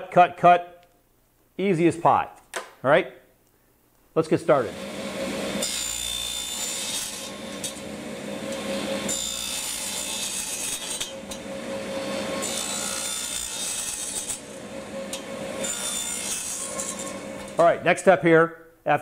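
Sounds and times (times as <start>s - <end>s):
saw blade cutting wood: 4.6s - 17.6s
saw motor running: 4.6s - 17.6s.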